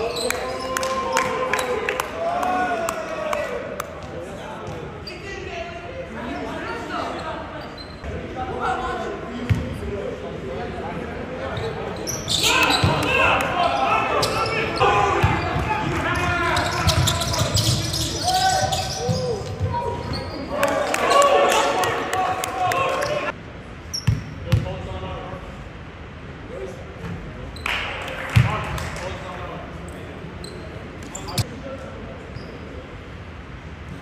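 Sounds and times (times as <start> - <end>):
players' voices and shouts: 0.0 - 23.4.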